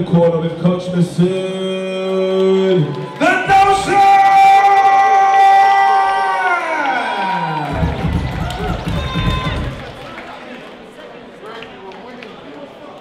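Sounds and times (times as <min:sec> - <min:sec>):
crowd cheering: 0:01.3 - 0:13.0.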